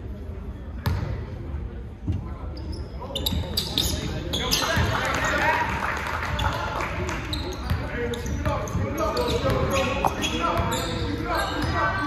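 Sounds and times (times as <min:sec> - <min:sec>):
sneakers squeaking: 0:00.8 - 0:01.2, 0:02.1 - 0:05.4, 0:06.2 - 0:12.0.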